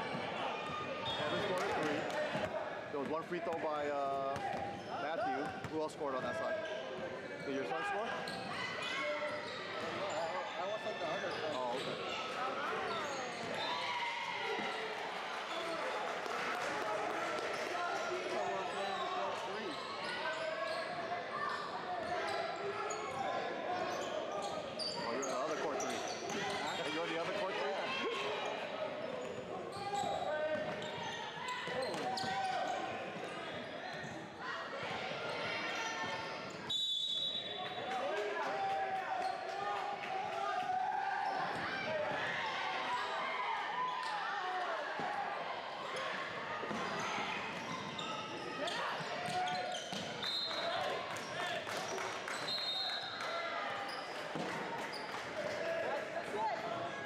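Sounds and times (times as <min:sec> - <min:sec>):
echoing crowd voices: 0:00.0 - 0:36.7.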